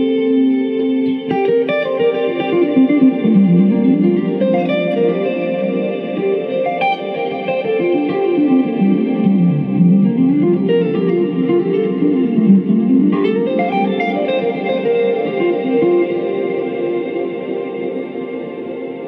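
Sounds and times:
electric guitar with echo: 0:00.0 - 0:19.0.

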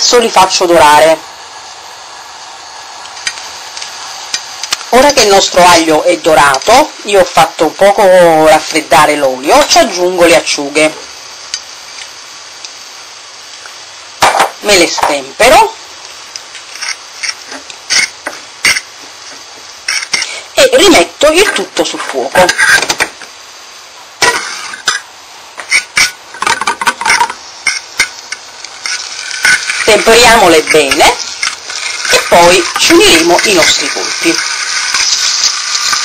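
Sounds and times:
oil sizzling in a frying pan: 0:00.1 - 0:36.0
fork scraping a frying pan: 0:16.7 - 0:18.9, 0:19.8 - 0:20.3, 0:22.4 - 0:23.0, 0:25.6 - 0:36.0.

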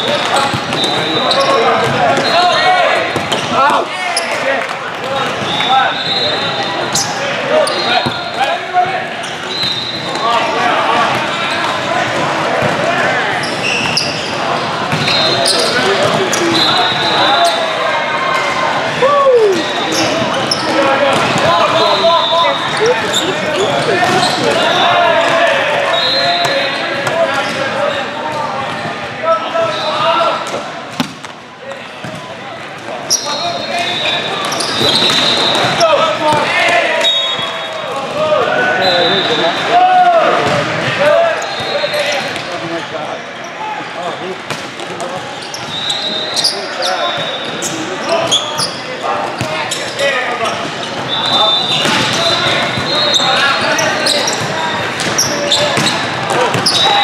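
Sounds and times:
volleyballs being hit and bouncing: 0:00.0 - 0:05.8, 0:09.4 - 0:16.6, 0:19.8 - 0:29.1, 0:30.4 - 0:33.1, 0:44.4 - 0:45.8, 0:51.7 - 0:57.0
voices calling and shouting: 0:00.0 - 0:30.9, 0:31.6 - 0:57.0.

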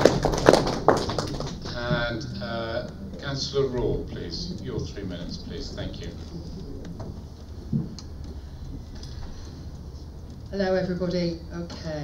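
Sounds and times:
low hum: 0:00.0 - 0:11.8.

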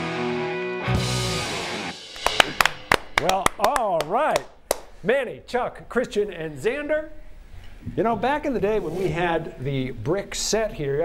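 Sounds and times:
rock band final chord: 0:00.0 - 0:03.1
people clapping: 0:02.1 - 0:04.9.

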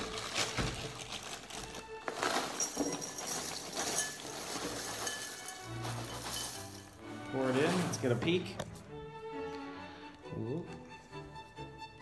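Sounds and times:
plastic bag tearing: 0:00.0 - 0:02.8
cereal pouring into ceramic bowl: 0:00.0 - 0:07.0
background music: 0:00.0 - 0:12.0.

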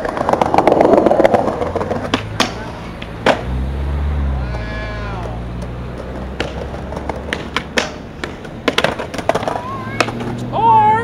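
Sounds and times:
skateboard wheels rolling on concrete: 0:00.0 - 0:11.0.

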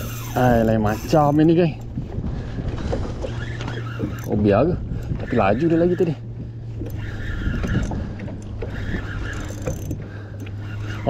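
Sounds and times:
water lapping against kayak hull: 0:00.0 - 0:11.0
wind buffeting microphone: 0:00.0 - 0:11.0.

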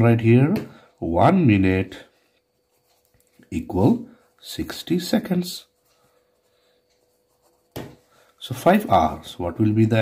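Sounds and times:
marker pen scratching on paper: 0:05.6 - 0:08.3.

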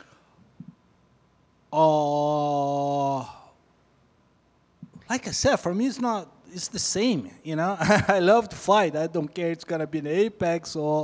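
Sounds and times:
man saying uhh into microphone: 0:01.8 - 0:03.5.

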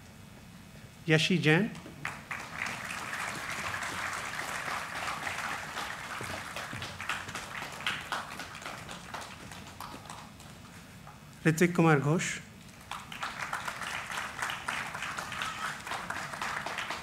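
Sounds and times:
audience applauding: 0:02.0 - 0:10.8, 0:12.7 - 0:17.0.

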